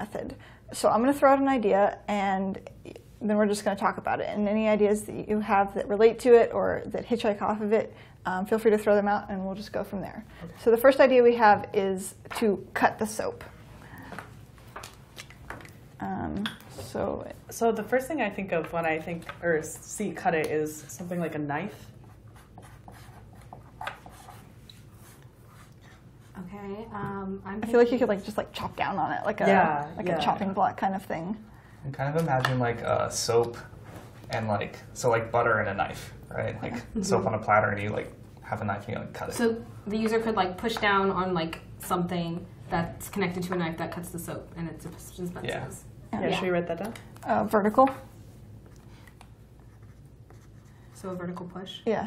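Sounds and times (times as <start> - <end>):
pens scratching on paper: 21.7 - 26.5, 48.6 - 51.8.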